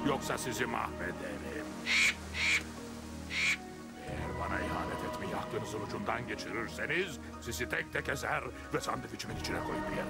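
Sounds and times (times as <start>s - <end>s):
background music: 0.0s - 10.0s
cartoon crow cawing: 1.8s - 2.7s, 3.3s - 3.6s.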